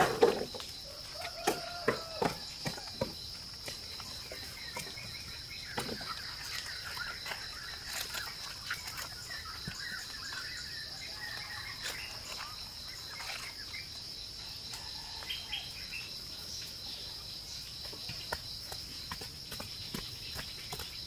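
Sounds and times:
bird chirps: 4.0 - 14.0.

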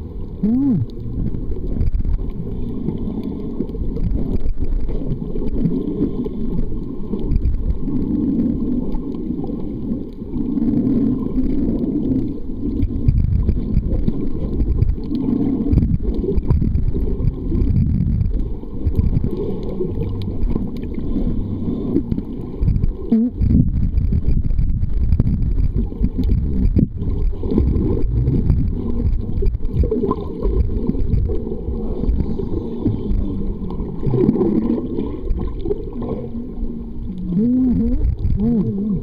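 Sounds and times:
low wavering hums: 0.0 - 39.0
underwater water rumble: 0.0 - 39.0.

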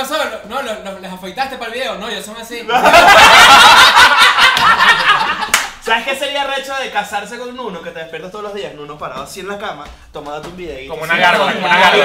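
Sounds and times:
men laughing loudly: 2.7 - 5.7.

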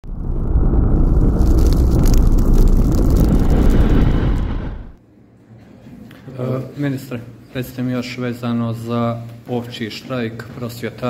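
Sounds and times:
loud deep rumble: 0.0 - 5.0.

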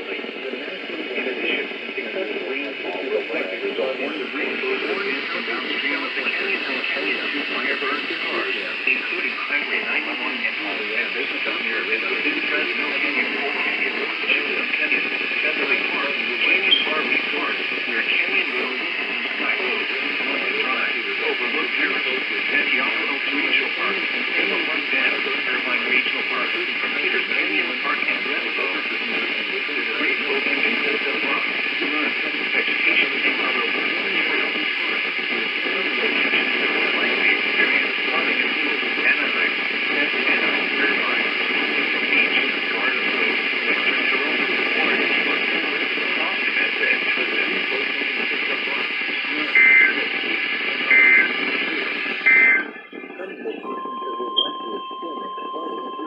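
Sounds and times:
radio hiss: 0.0 - 56.0
voice from radio speaker: 0.0 - 56.0.

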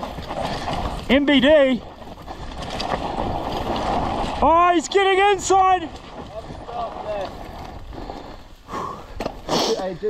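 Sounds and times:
mountain bike tyres and rattle: 0.0 - 10.0.

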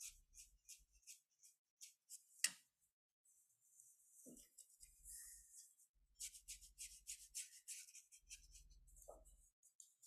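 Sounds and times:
paintbrush scrubbing on paper: 0.0 - 2.4, 3.3 - 10.0.

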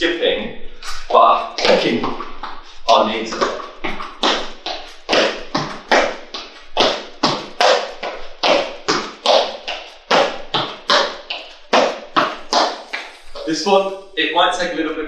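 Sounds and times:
footfalls on rubber floor: 0.8 - 14.0.

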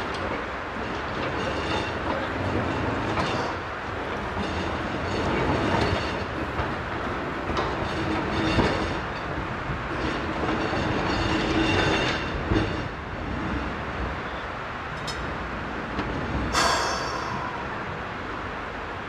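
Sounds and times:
tram wheels rumbling and clacking: 0.0 - 19.0.

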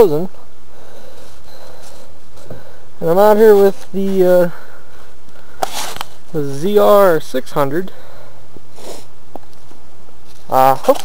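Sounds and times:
steady background noise: 0.0 - 11.0
person sniffing: 8.7 - 9.2.

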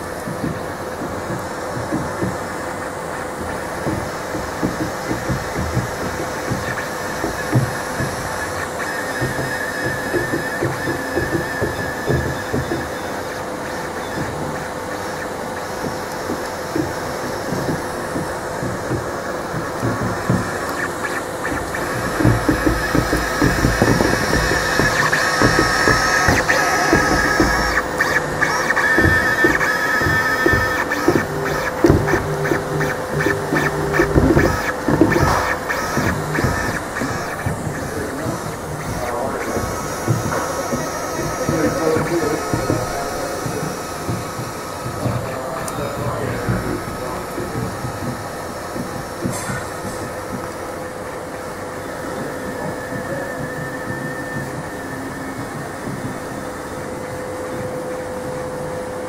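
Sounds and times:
fan hum: 0.0 - 59.0
rapid clicking: 0.0 - 59.0
stepper motors whining: 0.0 - 59.0.

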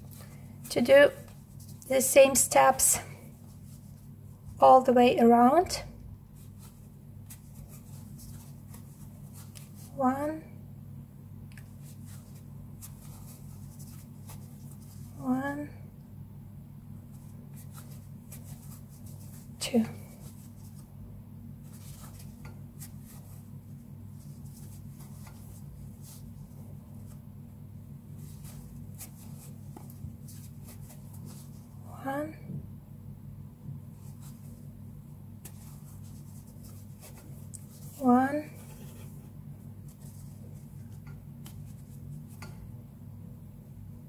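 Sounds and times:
crochet hook rustling yarn: 0.0 - 4.8, 6.3 - 10.2, 11.5 - 15.5, 17.0 - 20.9, 21.6 - 27.2, 28.1 - 31.8, 33.9 - 34.7, 35.4 - 42.7
steady low hum: 0.0 - 44.0
crochet hook rubbing yarn: 35.4 - 41.0.

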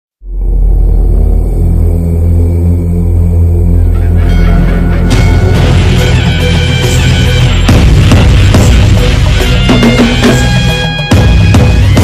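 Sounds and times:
intro music with deep drone: 0.2 - 12.0.

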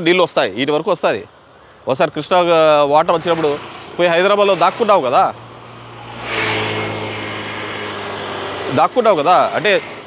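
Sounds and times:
vehicle engine hum: 1.6 - 10.0
rushing noise: 3.0 - 10.0.

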